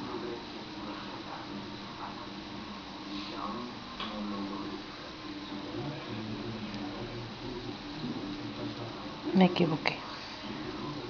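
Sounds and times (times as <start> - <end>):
steady hiss: 0.0 - 9.4
faint low hum: 0.0 - 11.0.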